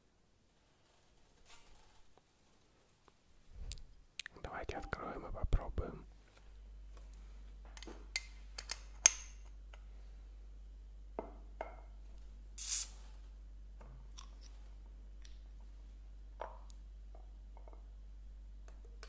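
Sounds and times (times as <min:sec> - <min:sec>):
hiss of escaping gas: 0:12.6 - 0:13.0.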